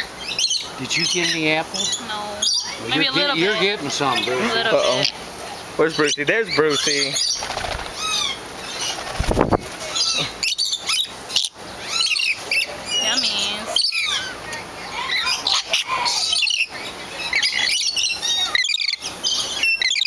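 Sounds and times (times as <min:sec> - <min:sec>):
flock of parrots chirping and squawking: 0:00.0 - 0:20.0.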